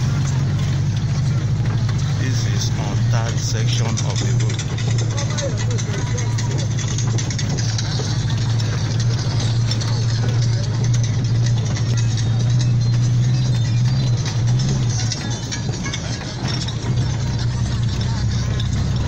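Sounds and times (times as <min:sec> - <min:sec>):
car engine droning: 0:00.0 - 0:19.0
music: 0:00.0 - 0:19.0
person talking: 0:02.2 - 0:06.1.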